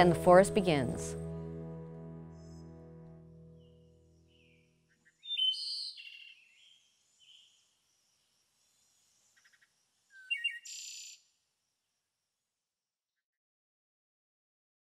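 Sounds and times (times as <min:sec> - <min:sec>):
background music: 0:00.0 - 0:04.9
birds chirping: 0:03.6 - 0:07.7.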